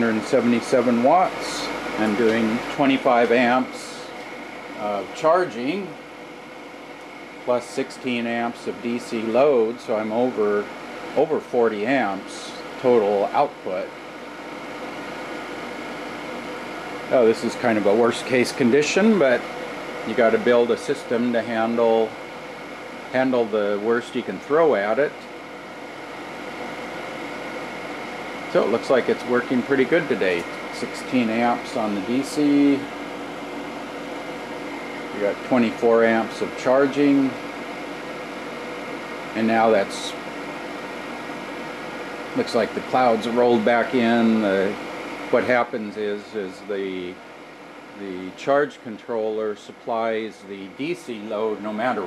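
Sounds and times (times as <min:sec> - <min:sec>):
faint fan hum: 0:00.0 - 0:52.0
fans blowing air: 0:00.0 - 0:52.0.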